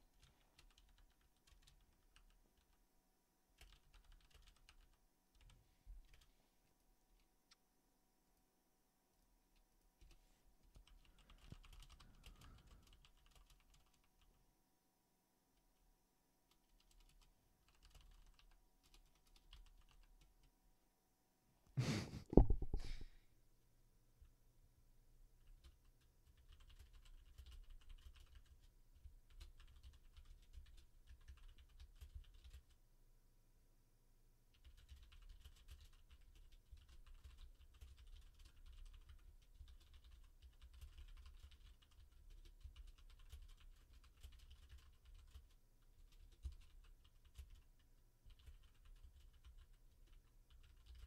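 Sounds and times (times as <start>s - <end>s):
typing on computer keyboard: 0.1s - 2.8s, 3.6s - 6.3s, 9.6s - 14.4s, 16.5s - 20.5s, 25.4s - 32.8s, 34.5s - 51.0s.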